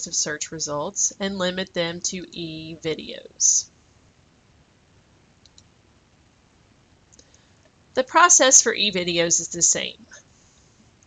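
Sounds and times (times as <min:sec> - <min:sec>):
computer mouse clicks: 0:05.4 - 0:05.7.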